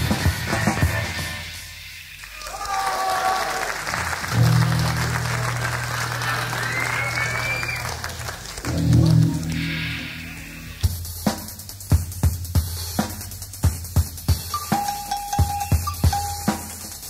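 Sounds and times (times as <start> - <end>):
audience applauding: 2.2 - 10.4
whistles from audience: 6.2 - 8.2.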